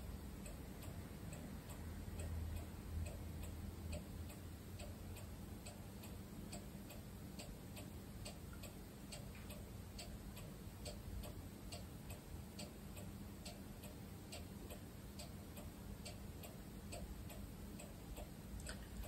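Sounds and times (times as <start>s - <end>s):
faint steady ticking: 0.0s - 19.0s.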